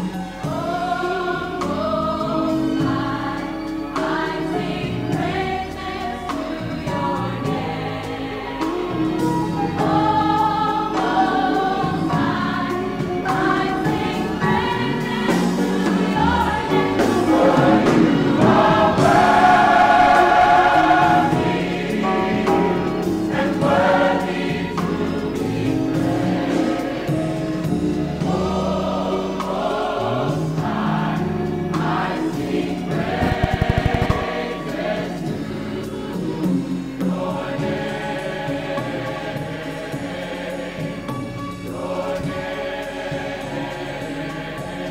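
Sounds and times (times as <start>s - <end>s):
gospel choir singing: 0.0s - 44.9s.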